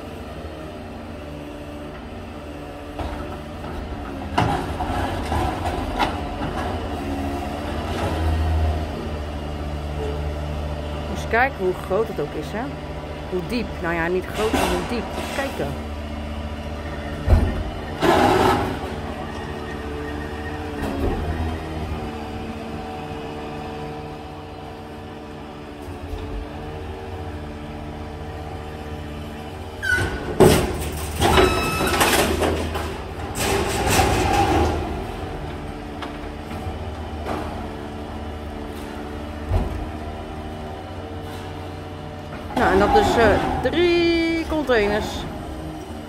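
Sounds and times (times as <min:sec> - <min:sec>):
truck engine running: 0:00.0 - 0:31.3
high squeal: 0:19.2 - 0:20.8.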